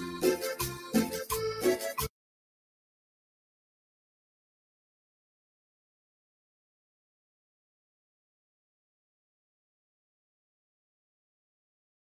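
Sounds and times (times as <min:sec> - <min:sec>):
live band music: 0:00.0 - 0:02.1.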